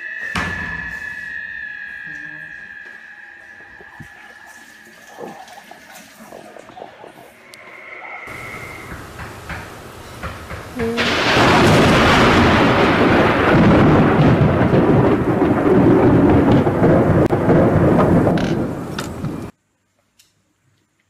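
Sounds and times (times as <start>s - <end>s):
thunder rumbling: 0.0s - 19.5s.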